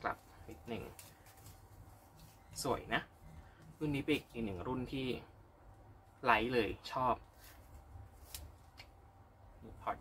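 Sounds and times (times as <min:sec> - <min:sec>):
faint rustling: 0:00.0 - 0:04.4.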